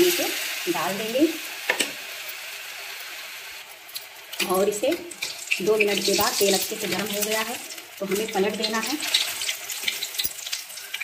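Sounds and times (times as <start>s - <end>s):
food deep-frying in oil: 0.0s - 11.0s.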